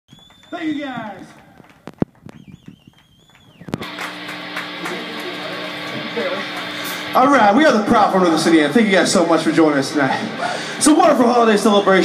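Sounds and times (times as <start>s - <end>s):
electric guitar wavering tone: 3.6s - 8.4s
amplifier drone: 3.6s - 12.0s.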